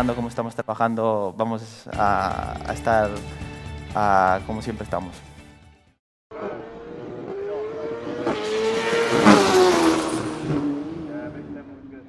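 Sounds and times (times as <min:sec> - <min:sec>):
racing motorcycle passing by: 0:06.3 - 0:12.0.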